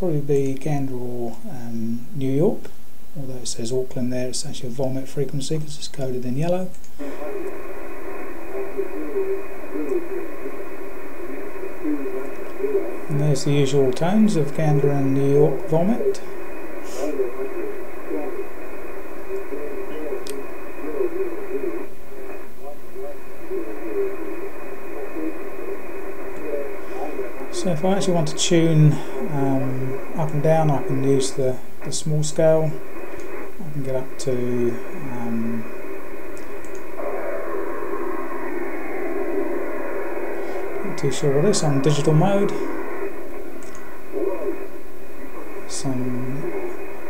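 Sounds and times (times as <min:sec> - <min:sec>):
radio background hiss: 0:00.0 - 0:47.0
thin narrow-band radio voice: 0:07.0 - 0:32.8, 0:40.6 - 0:43.1.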